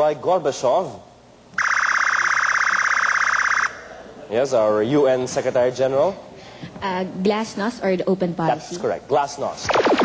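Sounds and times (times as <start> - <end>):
quiz show buzzer: 1.6 - 3.8.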